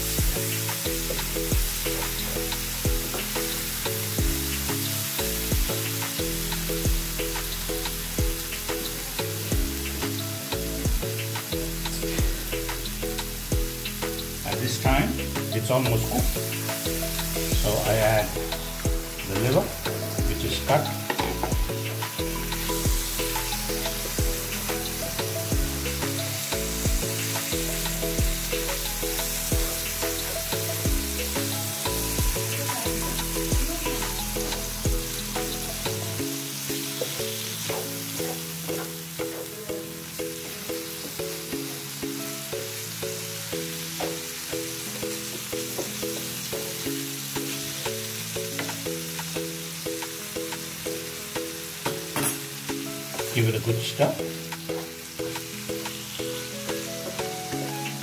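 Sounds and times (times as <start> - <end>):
background music with bass: 0.0 - 58.0
liver sizzling in a pan: 0.0 - 58.0.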